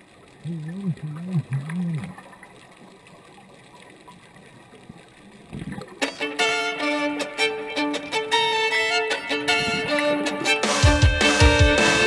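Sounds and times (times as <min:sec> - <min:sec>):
underwater background noise: 0:00.0 - 0:10.6.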